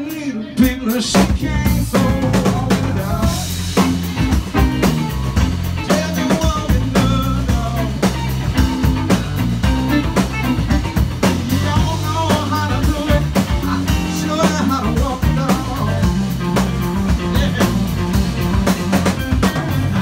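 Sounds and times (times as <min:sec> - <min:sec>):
man singing: 0:00.0 - 0:04.3, 0:05.4 - 0:09.0, 0:09.9 - 0:20.0
drum kit beat: 0:00.0 - 0:20.0
electric guitar: 0:00.0 - 0:20.0.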